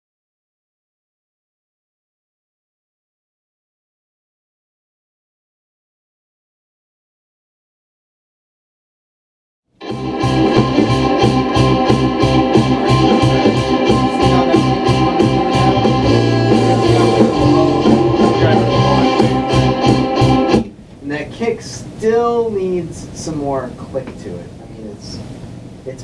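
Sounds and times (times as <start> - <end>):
sustained keyboard chords: 9.8 - 20.8
man talking: 12.8 - 19.8, 21.0 - 26.0.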